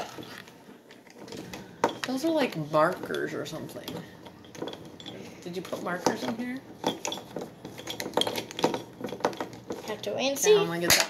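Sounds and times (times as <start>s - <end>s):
crayons rattling in a ceramic mug: 1.9s - 10.1s.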